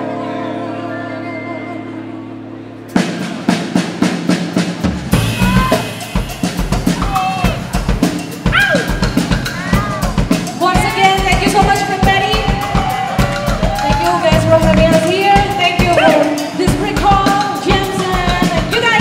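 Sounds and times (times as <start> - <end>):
person singing: 0.0 - 2.8
drum kit beat: 2.9 - 19.0
bass guitar: 5.0 - 19.0.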